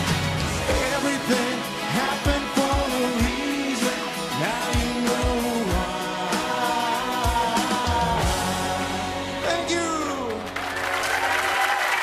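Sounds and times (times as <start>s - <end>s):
live pop band playing: 0.0s - 11.2s
bass drum beat: 4.4s - 9.0s.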